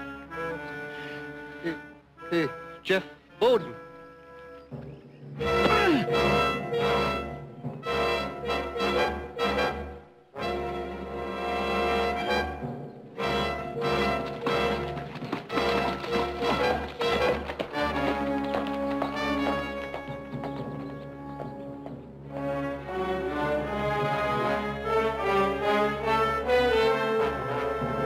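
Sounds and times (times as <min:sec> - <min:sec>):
dramatic brass orchestral music: 0:00.0 - 0:28.0.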